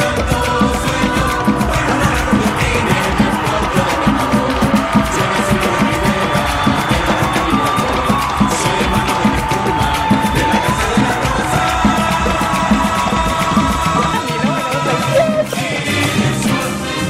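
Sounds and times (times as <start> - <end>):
music with fast beat: 0.0 - 17.0.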